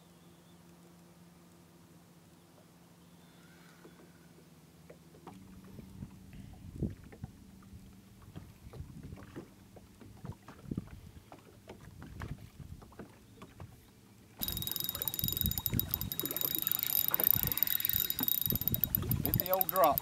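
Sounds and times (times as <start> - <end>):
water lapping against boat hull: 6.8 - 20.0
light wind: 14.4 - 20.0
quick ticking: 14.4 - 20.0
small clicks: 14.4 - 20.0.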